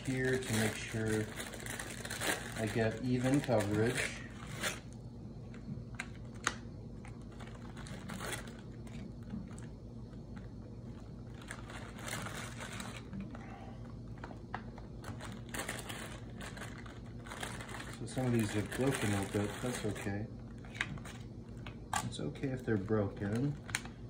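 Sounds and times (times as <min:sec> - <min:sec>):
plastic sleeve crinkling: 0:00.0 - 0:24.0
steady low hum: 0:00.0 - 0:24.0.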